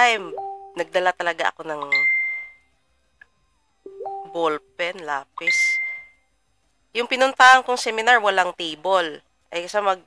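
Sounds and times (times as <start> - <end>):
electronic notification chime: 0.2 - 0.9, 3.9 - 4.6.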